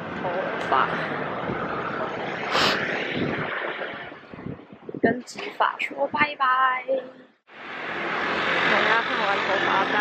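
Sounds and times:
hissing swell of traffic: 0:00.0 - 0:04.6, 0:07.5 - 0:10.0
passing cars and scooters: 0:00.0 - 0:05.4, 0:07.6 - 0:10.0.

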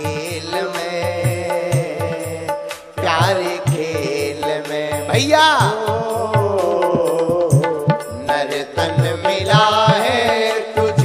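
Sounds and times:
devotional song melody: 0:00.0 - 0:11.0
steady low drum beat: 0:00.0 - 0:11.0.

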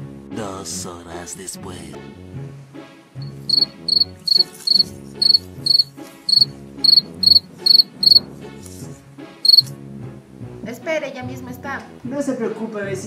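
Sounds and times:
cricket chirping: 0:03.2 - 0:08.2, 0:09.4 - 0:09.7.

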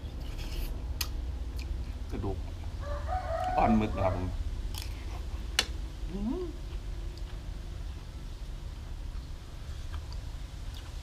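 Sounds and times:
rooster crowing: 0:02.8 - 0:04.4.

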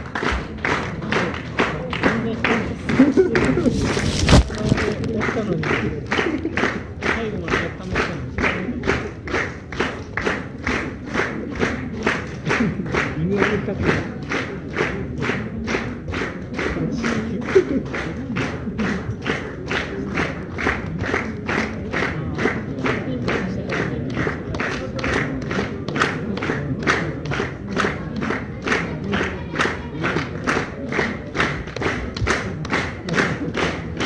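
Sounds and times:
audience clapping in unison: 0:00.0 - 0:34.0
crowd voices: 0:00.0 - 0:34.0.

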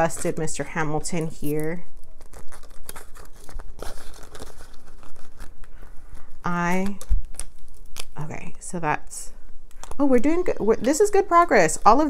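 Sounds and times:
paper money and plastic crinkling: 0:00.0 - 0:08.3, 0:09.7 - 0:12.0.

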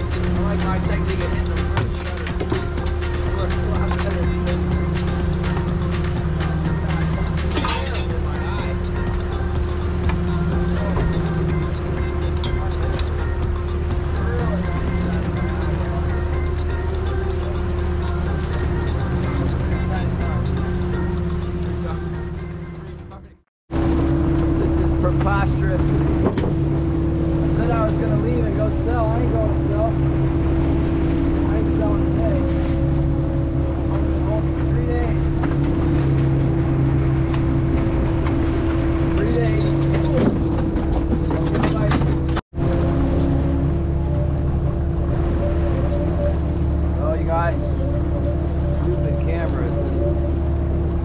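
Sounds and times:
boat engine humming: 0:00.0 - 0:51.0.

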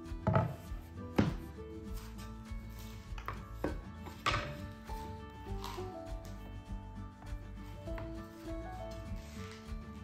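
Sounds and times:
soft background music: 0:00.0 - 0:10.0
wooden boards knocking: 0:00.2 - 0:01.5, 0:03.2 - 0:04.6.

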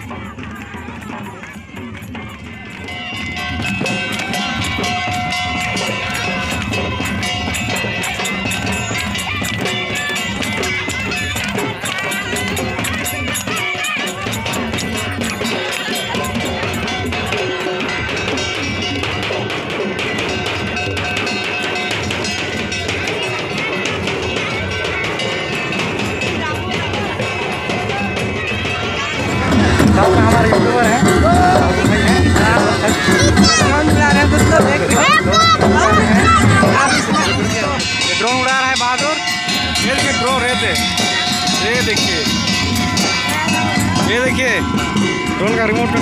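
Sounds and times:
hand drums beating: 0:00.0 - 0:46.0
music playing: 0:00.0 - 0:46.0
voices: 0:00.0 - 0:46.0.

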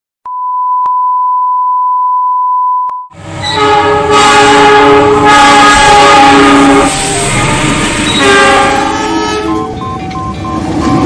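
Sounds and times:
locomotive horn: 0:03.4 - 0:10.1
steady electronic beep: 0:09.4 - 0:11.0.

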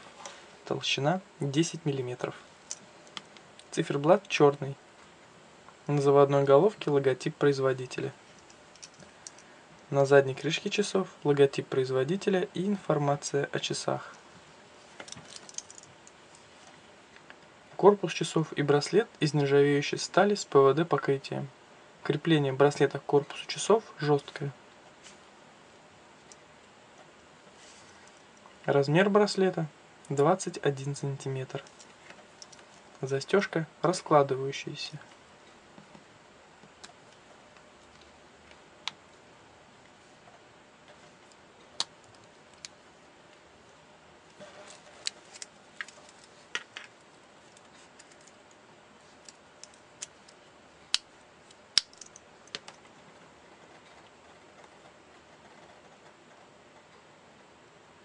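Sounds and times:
watch bracelet links clinking: 0:15.2 - 0:15.9.

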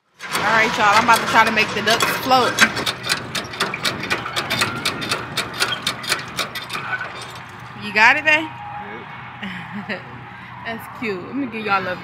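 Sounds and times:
hand pumps clattering: 0:00.2 - 0:08.1.

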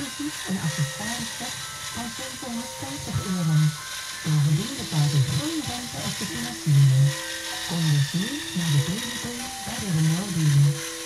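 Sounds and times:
person talking: 0:00.0 - 0:10.8
music: 0:00.0 - 0:11.0
small electric motors whining: 0:00.0 - 0:11.0.

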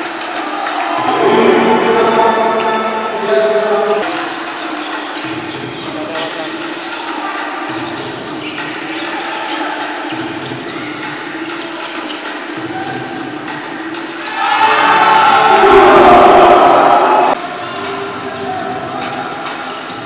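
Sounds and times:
crowd cheering: 0:00.0 - 0:05.2, 0:14.2 - 0:20.0
arena crowd din: 0:00.0 - 0:20.0.

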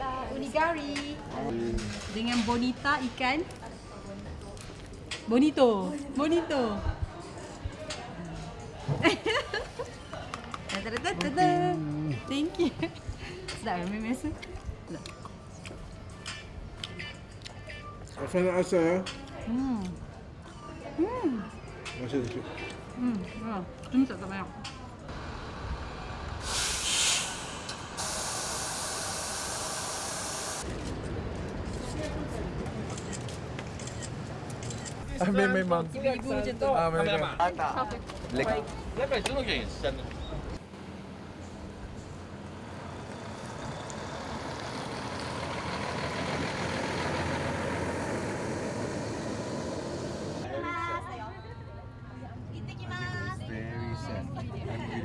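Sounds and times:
bus driving past: 0:25.1 - 0:34.9, 0:40.2 - 0:50.5
loud hiss: 0:25.2 - 0:30.7.

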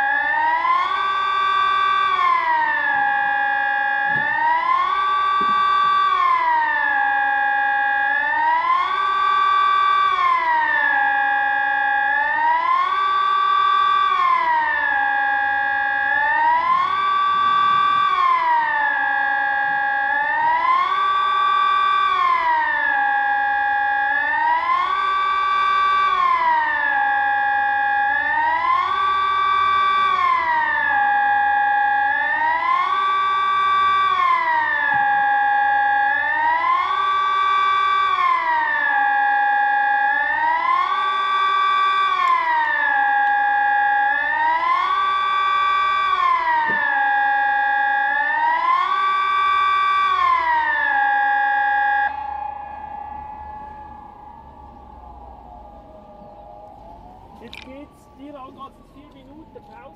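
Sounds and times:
electronic siren rising and falling: 0:00.0 - 0:59.9.

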